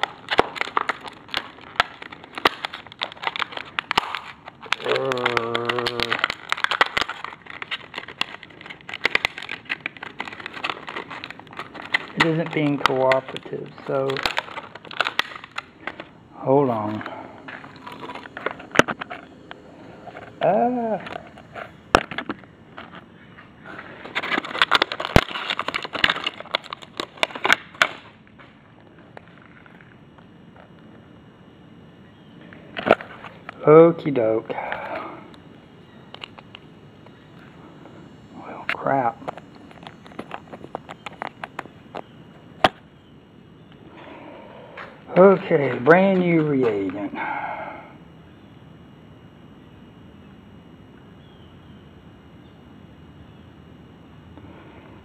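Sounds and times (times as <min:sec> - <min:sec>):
plastic bag crinkling: 0:00.0 - 0:28.2, 0:38.1 - 0:42.8, 0:44.8 - 0:47.1.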